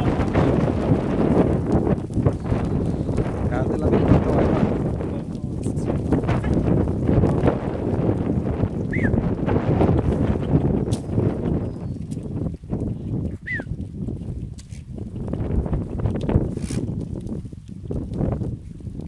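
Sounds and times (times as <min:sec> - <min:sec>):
hooves shuffling and trampling: 0:00.0 - 0:19.0.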